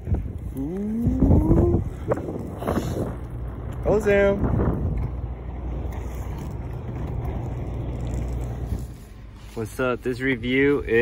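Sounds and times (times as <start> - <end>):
wind on microphone: 0.0 - 9.4
skate wheels rolling on asphalt: 0.0 - 11.0.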